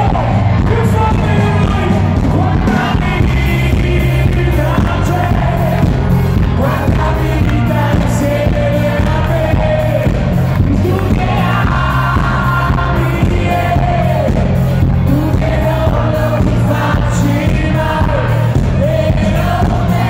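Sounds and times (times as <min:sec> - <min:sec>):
band with heavy bass and beat: 0:00.0 - 0:20.0
man singing: 0:00.0 - 0:20.0.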